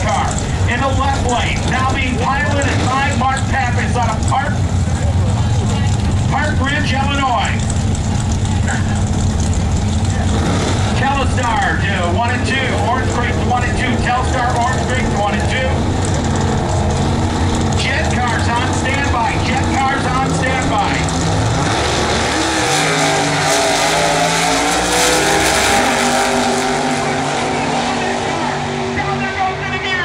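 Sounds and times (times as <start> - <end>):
drag racing cars accelerating: 0.0 - 30.0.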